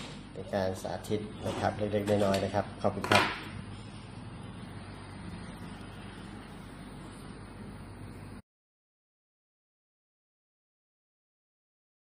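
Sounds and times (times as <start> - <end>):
low electrical hum: 0.0 - 8.4.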